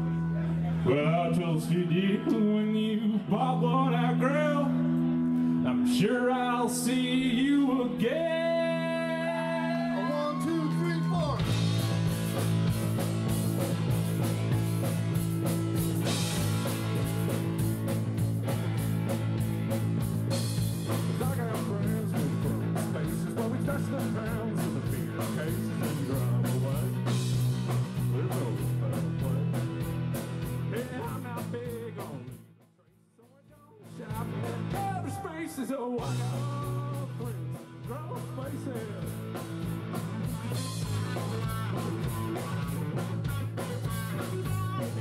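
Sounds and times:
live rock band playing: 0.0s - 32.6s, 33.8s - 45.0s.

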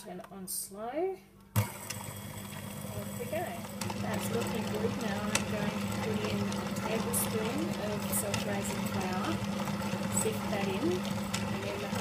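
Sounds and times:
stand mixer motor hum: 1.6s - 12.0s
beaters churning batter: 1.8s - 12.0s.

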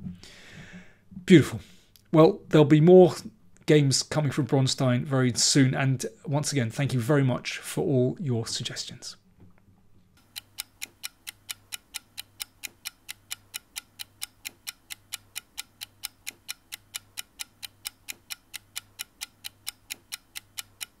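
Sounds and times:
rapid clock-like ticking: 10.2s - 21.0s.

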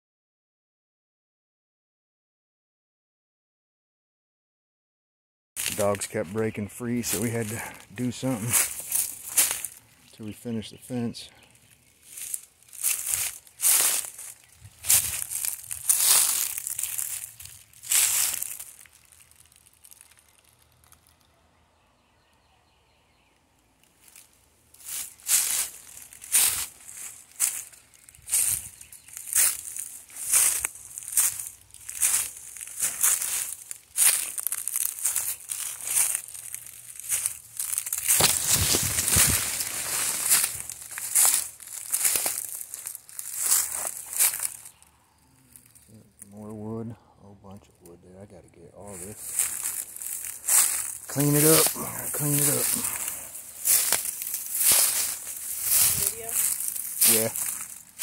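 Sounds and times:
footsteps crunching through dry leaves: 5.6s - 21.3s, 23.8s - 46.3s, 48.8s - 58.0s.

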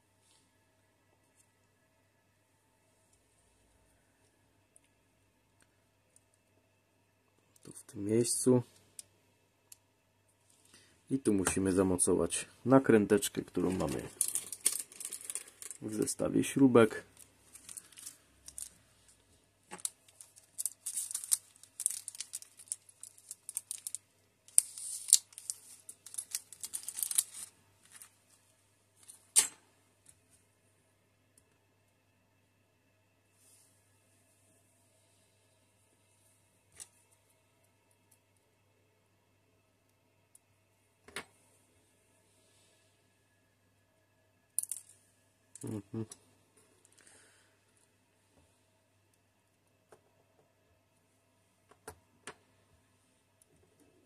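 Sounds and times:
plastic bag crinkling: 13.3s - 16.2s, 17.1s - 28.1s.

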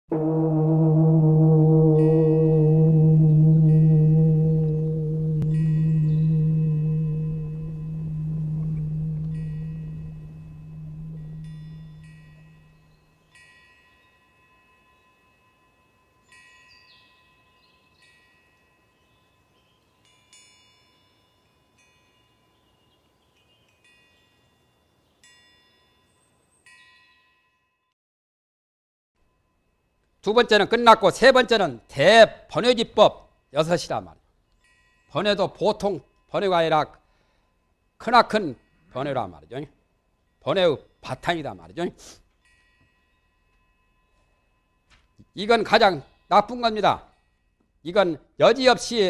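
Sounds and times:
deep bell or gong humming: 0.1s - 13.0s
metal wind chimes ringing: 5.4s - 27.9s, 34.5s - 47.6s.

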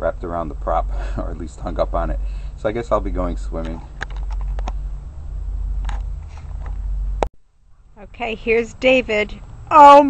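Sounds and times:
camera handling rumble: 3.6s - 4.9s, 5.8s - 7.3s.

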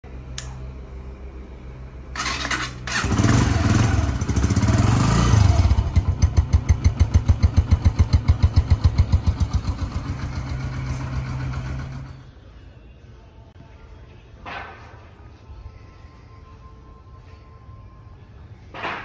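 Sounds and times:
motorcycle engine running: 2.1s - 12.3s
motorcycle engine cranking: 2.2s - 12.3s
motorcycle engine idling: 2.2s - 12.4s.

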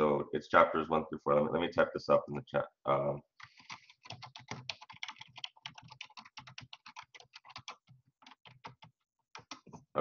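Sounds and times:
typing on computer keyboard: 3.4s - 9.8s.

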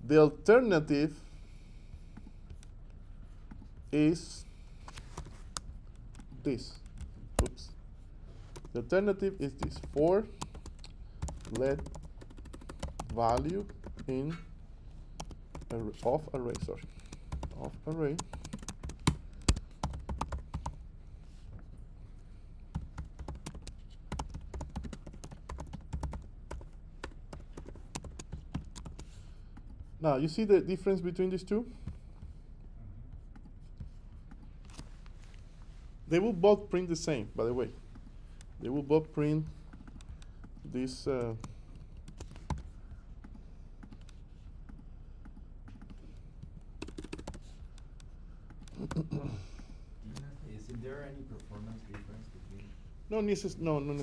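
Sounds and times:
laptop keyboard typing: 8.5s - 8.8s, 9.4s - 14.2s, 15.2s - 20.8s, 22.7s - 29.7s, 41.2s - 49.2s.

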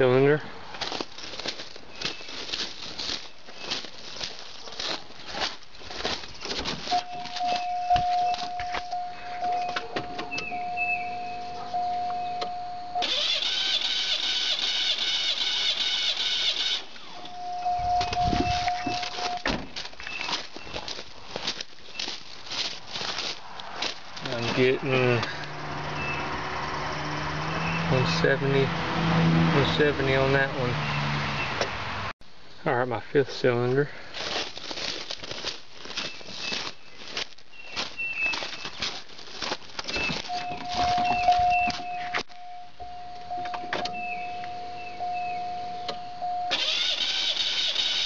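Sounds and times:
starter cranking engine: 13.0s - 16.9s, 46.5s - 48.0s.

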